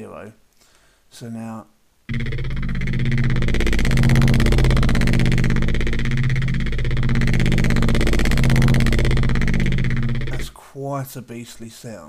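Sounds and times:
gritty distorted bass synth note: 0:02.1 - 0:10.6.

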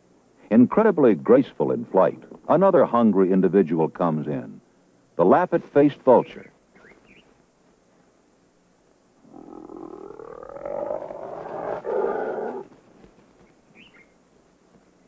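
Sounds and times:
hyena growling: 0:09.2 - 0:12.7.

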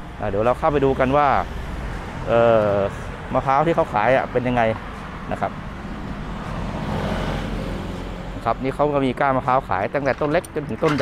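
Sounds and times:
road noise hiss: 0:00.0 - 0:09.2
engine hum: 0:00.0 - 0:11.0.

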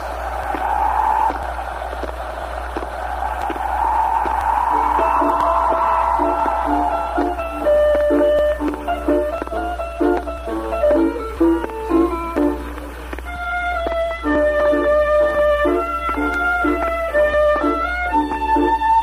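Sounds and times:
rushing noise: 0:00.0 - 0:13.3
instrumental melody of held notes: 0:06.2 - 0:19.0.

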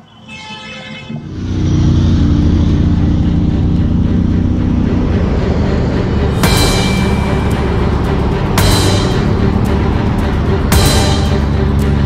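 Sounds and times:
highway traffic rushing past: 0:01.1 - 0:12.0.

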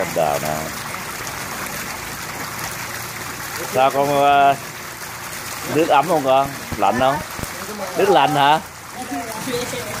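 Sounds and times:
swimming pool water splashing: 0:00.0 - 0:10.0.

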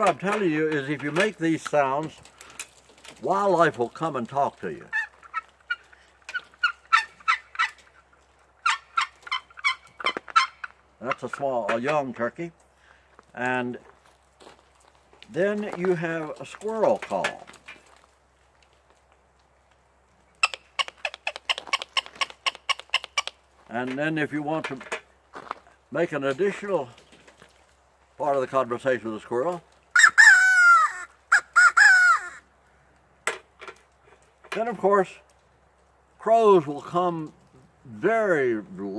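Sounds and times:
box turkey call yelps: 0:04.8 - 0:10.8, 0:20.4 - 0:23.4, 0:29.9 - 0:32.5
squirrel call blown by mouth: 0:30.0 - 0:32.4.

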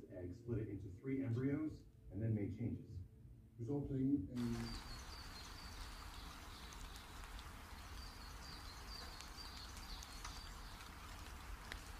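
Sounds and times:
steady hiss: 0:04.4 - 0:11.9
soft ticks: 0:06.6 - 0:08.1, 0:08.9 - 0:11.9.

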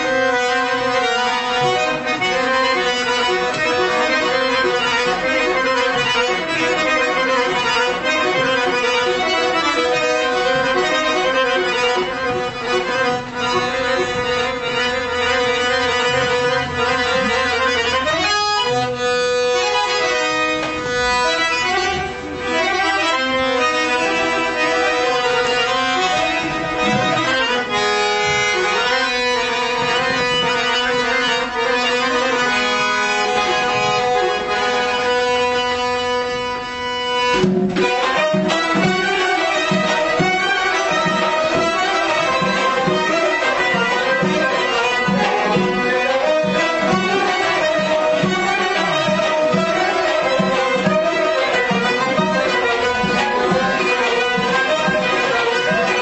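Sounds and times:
accordion melody: 0:00.0 - 0:56.0.

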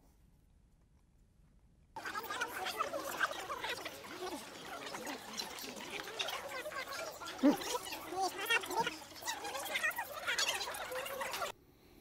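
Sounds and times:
sped-up garbled voice: 0:02.0 - 0:11.5.

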